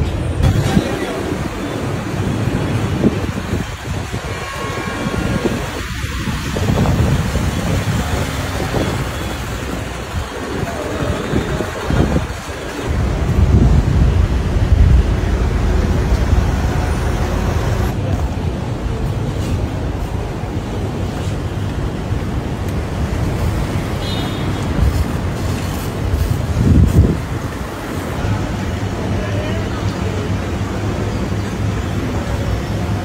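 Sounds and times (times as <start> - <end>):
traffic noise: 0.0 - 33.0
heavy low rumble: 9.6 - 23.5.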